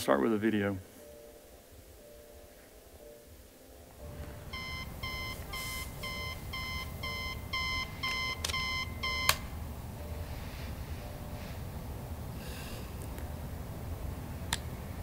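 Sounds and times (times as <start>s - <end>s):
digital alarm clock beeping: 4.5s - 9.4s.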